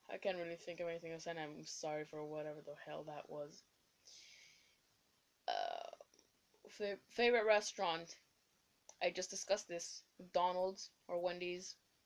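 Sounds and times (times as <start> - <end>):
soft breathy hiss: 0.0 - 12.0.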